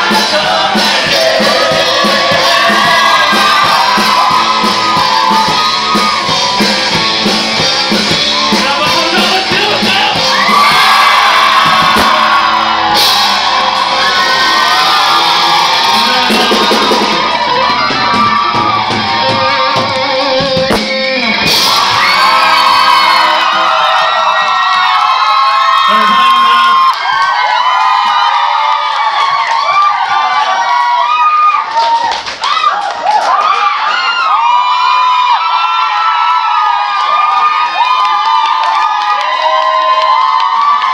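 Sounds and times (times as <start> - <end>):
people singing: 0.0 - 4.1
people shouting and whooping: 0.0 - 20.4, 21.3 - 40.9
rock band playing: 0.0 - 26.9.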